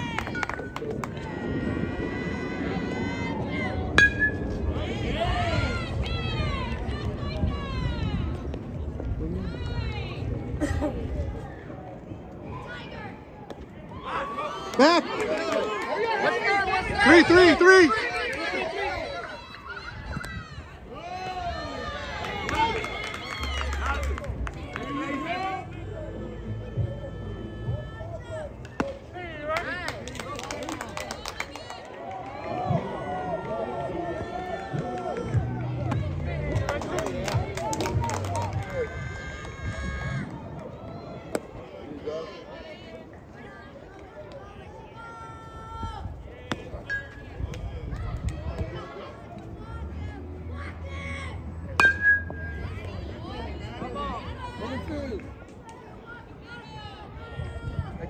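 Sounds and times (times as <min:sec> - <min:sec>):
people chattering and calling out: 0:00.0 - 0:58.0.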